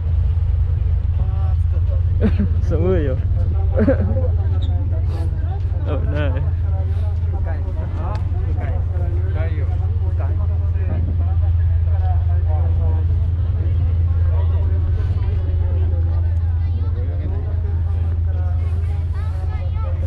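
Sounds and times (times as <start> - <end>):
boat engine idling: 0.0 - 20.0
people talking: 1.0 - 20.0.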